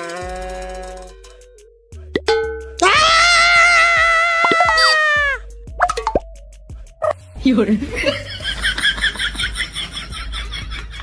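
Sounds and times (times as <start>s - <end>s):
loud high scream: 2.8s - 5.4s
sharp plop: 5.8s - 6.3s.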